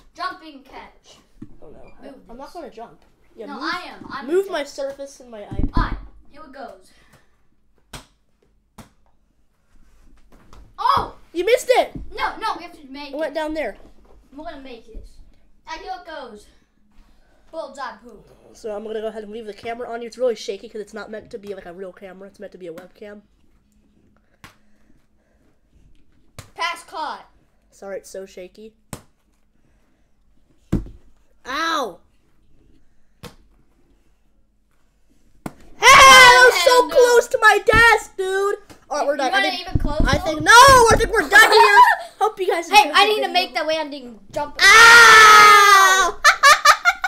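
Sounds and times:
heavy thud on hard surface: 0:39.6 - 0:41.2.

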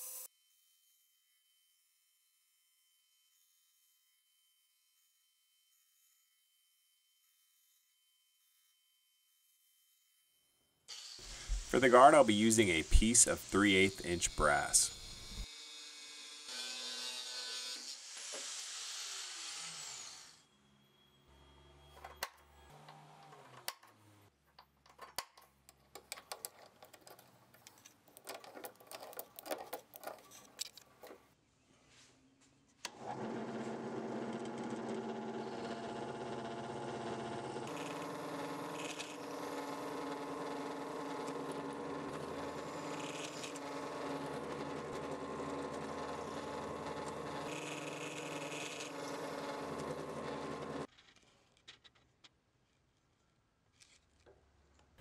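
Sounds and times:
drill press drilling metal: 0:32.9 - 0:50.9.

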